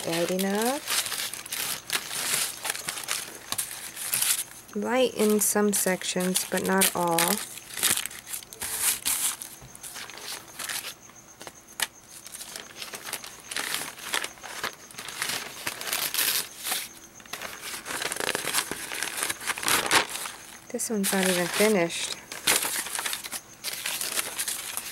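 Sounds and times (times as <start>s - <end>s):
paper rustling and crinkling: 0.0s - 24.9s.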